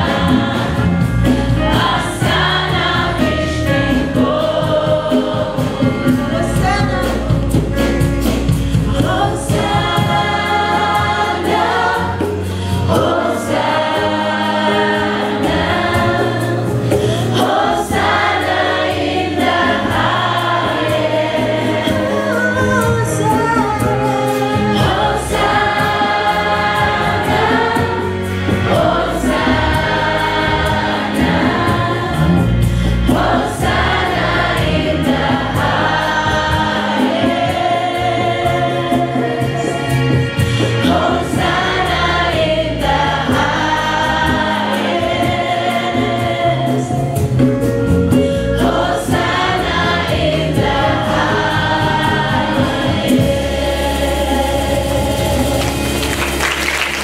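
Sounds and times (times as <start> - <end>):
women lead vocalists singing: 0.0 - 7.2, 8.8 - 40.0, 40.7 - 47.4, 48.3 - 56.3
gospel choir singing: 0.0 - 57.0
low bass line: 21.9 - 36.8.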